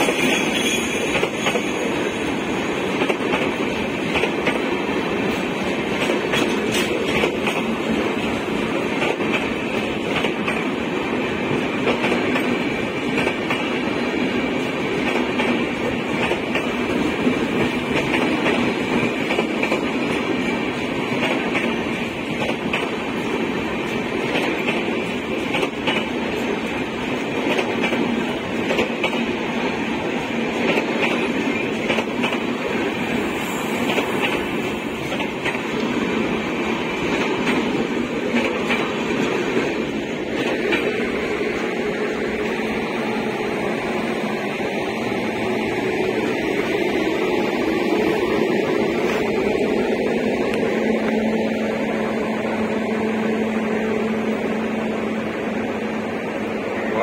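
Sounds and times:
train wheels clicking over rail joints: 0.0 - 51.2
train rolling rumble: 0.0 - 57.0.

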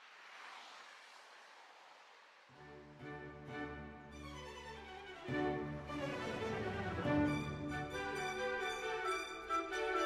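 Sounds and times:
background music with bowed strings: 2.6 - 10.0.

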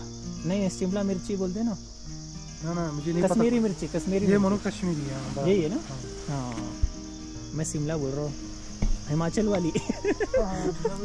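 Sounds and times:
background music: 0.0 - 11.0
crickets chirring: 0.0 - 11.0
person's voice: 3.0 - 6.7.

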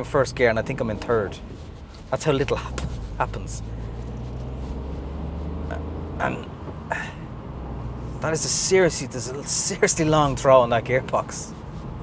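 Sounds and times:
car engine droning: 0.0 - 12.0.

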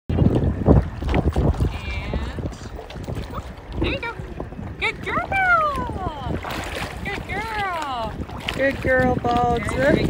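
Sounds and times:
water sloshing and splashing: 0.1 - 10.0
wind buffeting microphone: 0.1 - 10.0.

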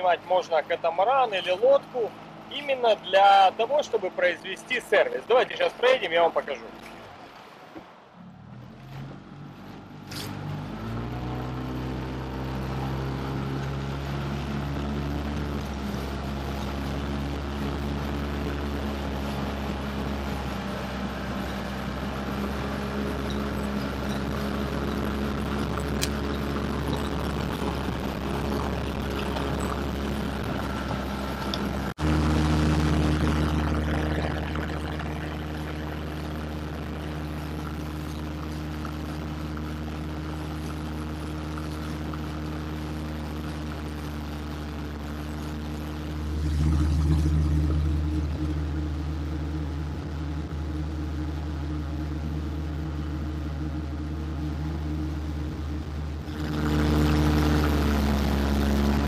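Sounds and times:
outboard motor running: 0.0 - 7.3, 8.2 - 59.0.

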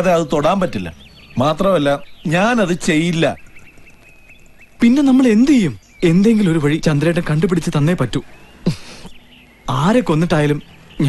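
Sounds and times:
men talking: 0.0 - 3.6, 4.8 - 11.0.

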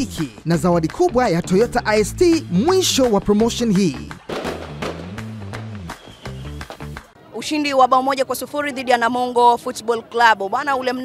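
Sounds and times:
jingle music with beat: 0.0 - 7.0
crackling firework effects: 4.2 - 7.2.

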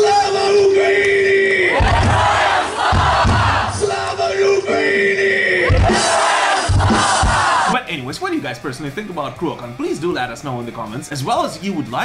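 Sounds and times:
crowd cheering and shouting: 0.0 - 7.9
low thumps: 1.8 - 3.8, 5.7 - 7.6.

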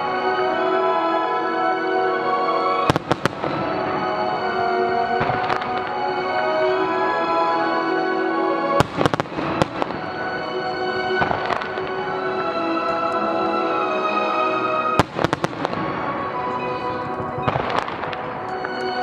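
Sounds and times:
music: 0.0 - 19.0
firework shells bursting: 8.8 - 12.1, 15.0 - 19.0.

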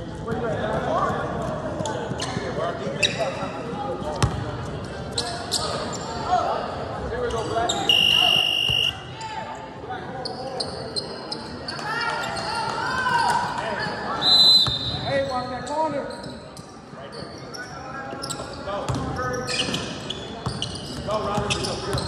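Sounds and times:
sneakers squeaking: 2.1 - 6.2, 7.2 - 22.0
people calling out: 7.8 - 9.0.

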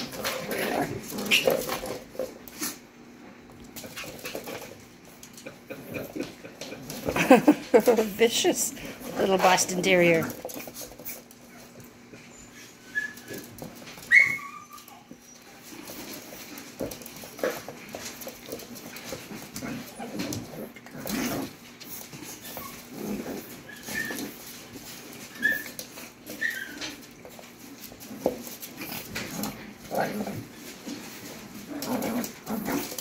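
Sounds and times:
puppies scuffling on wooden floor: 0.0 - 33.0
puppy yips and whimpers: 12.6 - 13.4, 14.0 - 15.4, 25.3 - 27.0.

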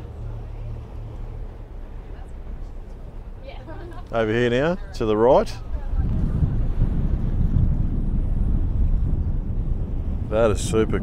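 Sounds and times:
boat engine drone: 0.0 - 11.0
wind buffeting the microphone: 0.0 - 11.0.

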